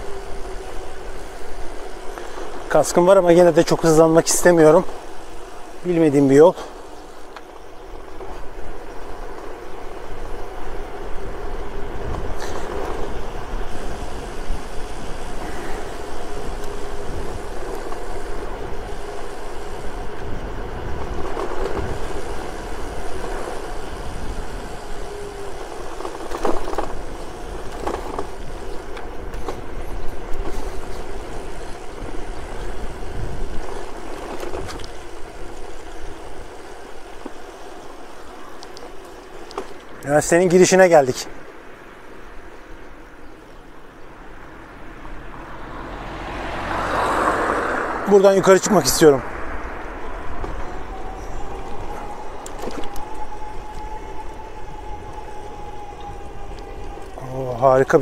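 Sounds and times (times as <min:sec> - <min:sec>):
electric motor hum: 0:00.0 - 0:40.7, 0:41.4 - 0:58.0
tyres on rough asphalt: 0:00.0 - 0:58.0
wind rumble on microphone: 0:06.8 - 0:40.0, 0:42.4 - 0:58.0.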